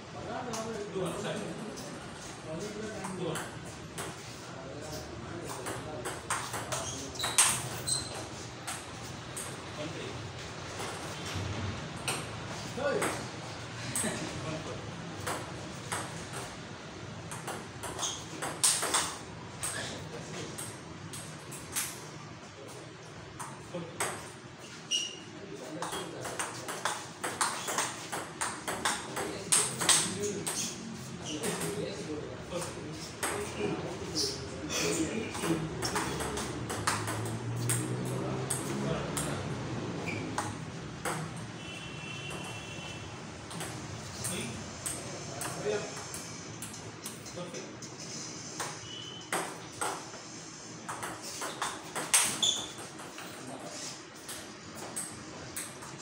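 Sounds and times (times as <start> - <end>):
table tennis ball hits: 17.3 - 19.8, 25.8 - 30.7, 35.4 - 39.4, 40.3 - 41.5, 43.5 - 47.2, 48.6 - 50.2, 50.8 - 53.2
table tennis ball clicks: 35.8 - 39.3.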